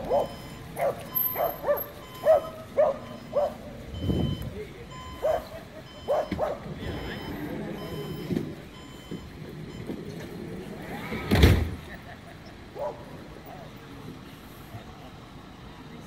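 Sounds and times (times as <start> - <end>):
dog barking: 0.0 - 3.6, 5.2 - 6.7, 12.8 - 13.1
passing road traffic: 0.0 - 16.0
short electronic beeps: 0.1 - 9.9.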